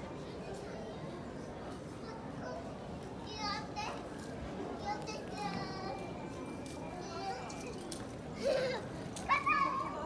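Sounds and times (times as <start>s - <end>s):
murmur of crowd: 0.0s - 10.0s.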